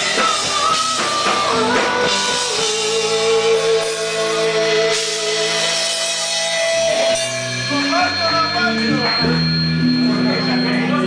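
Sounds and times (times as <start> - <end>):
person singing: 0.0 - 6.2
drums and cymbals: 0.0 - 11.0
electric guitars and bass: 0.0 - 11.0.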